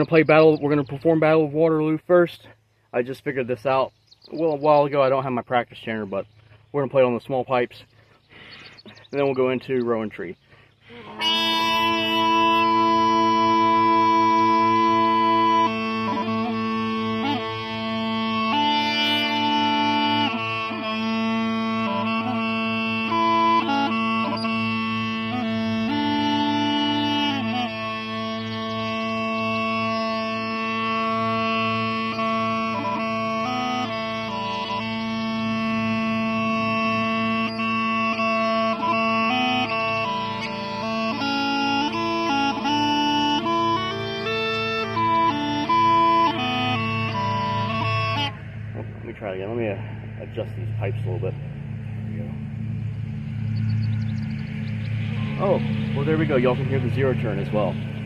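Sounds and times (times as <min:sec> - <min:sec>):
bagpipe chanter melody: 0:00.0 - 0:02.3, 0:07.8 - 0:58.0
bagpipe drones: 0:00.0 - 0:02.3, 0:07.9 - 0:58.0.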